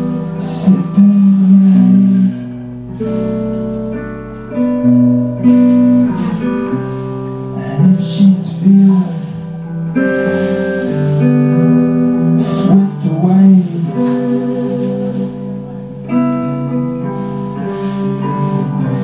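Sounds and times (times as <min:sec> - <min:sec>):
drums: 0:00.0 - 0:19.0
electric guitar long held notes: 0:00.0 - 0:19.0.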